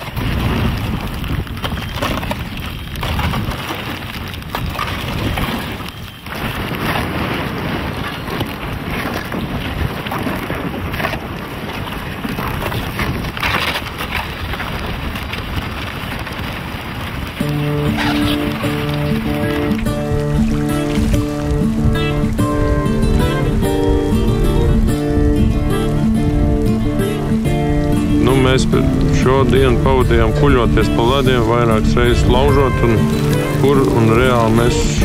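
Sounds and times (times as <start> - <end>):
canoe crunching through ice: 0.0 - 35.0
music: 17.4 - 35.0.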